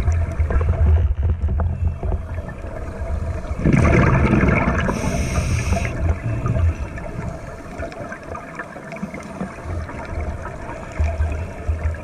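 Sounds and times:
underwater rumble of water: 0.0 - 12.0.

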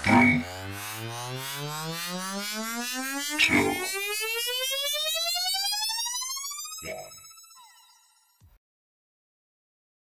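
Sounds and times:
rising synthesizer sweep: 0.0 - 8.4.

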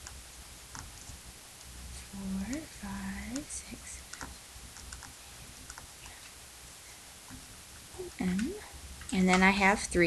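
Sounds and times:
woman humming: 8.0 - 8.7.

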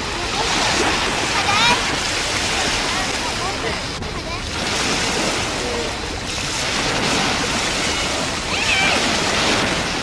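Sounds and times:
waves breaking on sandy shore: 0.0 - 10.0.

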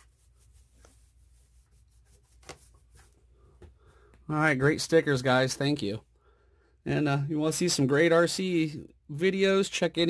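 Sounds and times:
hand rubbing sticker on board: 0.0 - 3.2.

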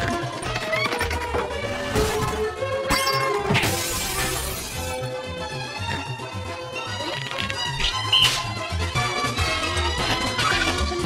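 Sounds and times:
song playing in background: 0.0 - 11.0
crash with shattering glass: 3.3 - 5.0.

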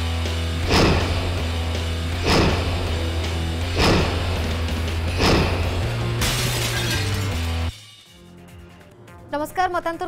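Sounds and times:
dramatic music: 0.0 - 9.3
deep bass tone: 0.6 - 6.2
shattering crash: 3.6 - 7.7.

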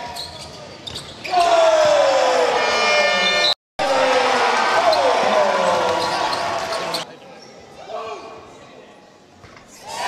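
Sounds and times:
voices in large hall: 0.0 - 10.0.

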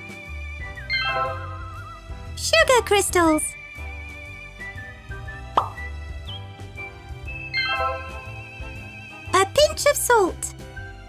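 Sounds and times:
light background music: 0.0 - 11.0
rising cartoon pop effect: 5.5 - 6.5.

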